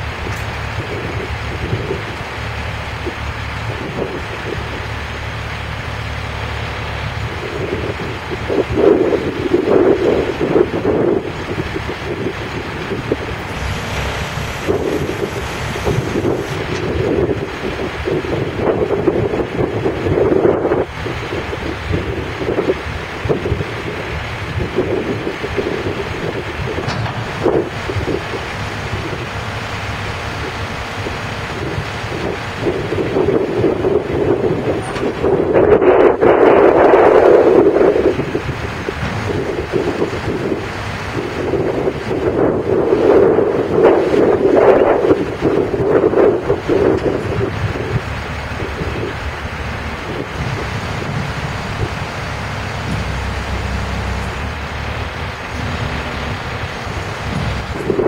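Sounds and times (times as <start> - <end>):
truck engine running: 0.0 - 58.0
wind buffeting microphone: 0.0 - 58.0.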